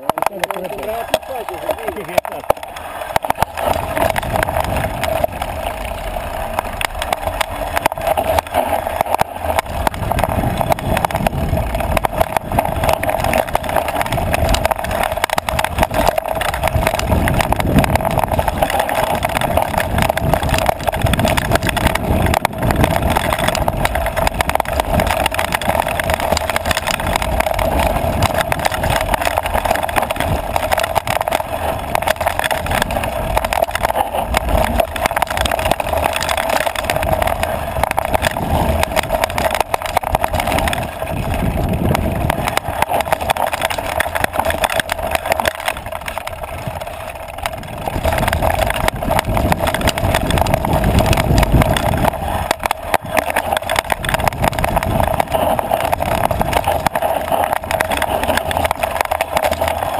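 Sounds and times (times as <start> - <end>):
bike rattling over bumps: 0.0 - 59.9
bike riding on dirt trail: 0.0 - 59.9.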